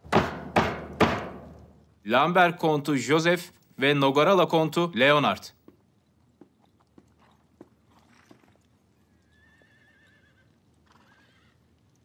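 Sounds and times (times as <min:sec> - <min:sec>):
distant horse whinnying: 0:09.2 - 0:11.6.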